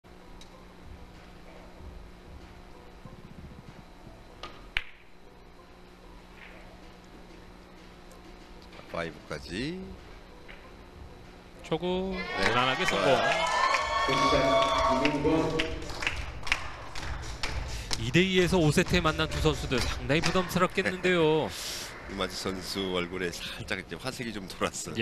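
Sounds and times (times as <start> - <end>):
scattered hand claps: 12.4 - 20.6.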